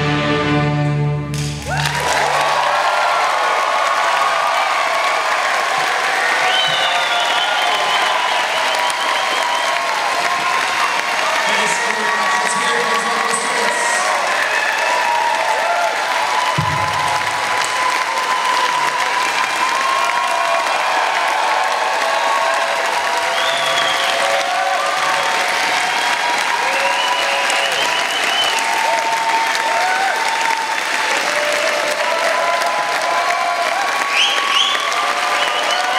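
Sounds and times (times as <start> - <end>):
audience applauding: 1.3 - 35.9
people shouting and whooping: 1.6 - 35.9.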